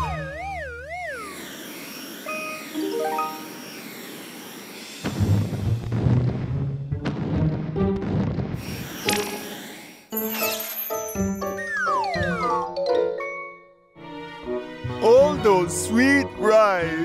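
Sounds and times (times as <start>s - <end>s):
wobbling warbling tone sliding down: 0.0s - 5.0s
quick rising run of notes: 0.0s - 5.8s
background music: 2.8s - 3.5s, 10.1s - 17.0s.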